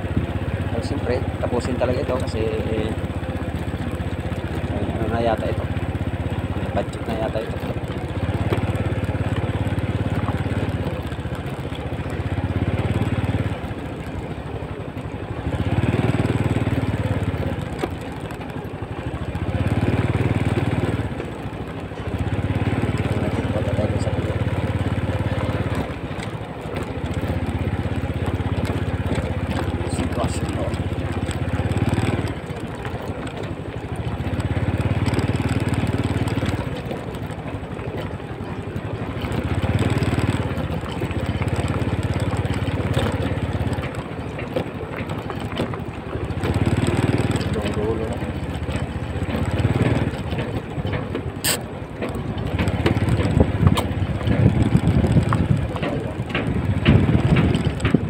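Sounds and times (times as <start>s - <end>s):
vehicle engine running: 0.0s - 58.0s.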